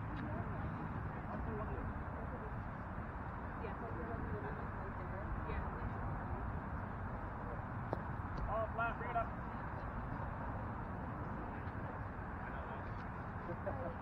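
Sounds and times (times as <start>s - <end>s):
low outdoor background noise: 0.0s - 14.0s.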